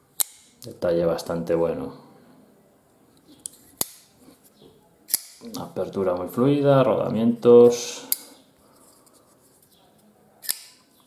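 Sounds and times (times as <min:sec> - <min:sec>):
folding knife metallic clicks: 0:05.1 - 0:05.5, 0:10.4 - 0:10.9.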